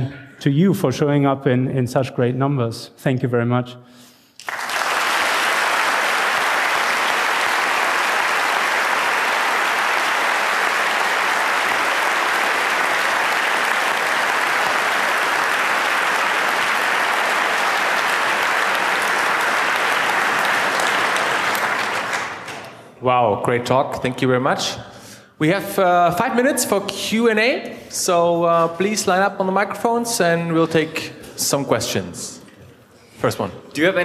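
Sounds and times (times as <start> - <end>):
audience applauding: 4.4 - 22.8.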